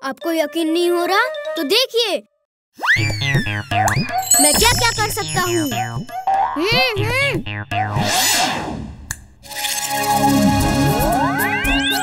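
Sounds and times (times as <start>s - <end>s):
cartoon slide whistle: 11.0s - 12.0s.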